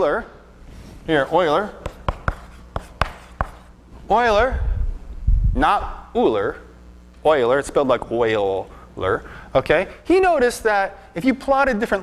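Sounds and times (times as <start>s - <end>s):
chalk tapping and scratching on blackboard: 1.3s - 3.8s.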